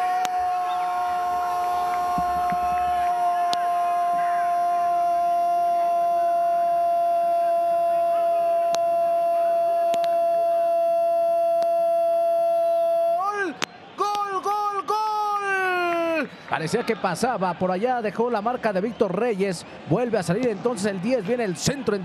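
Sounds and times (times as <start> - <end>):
commentator shouting goal: 13.1 - 18.0.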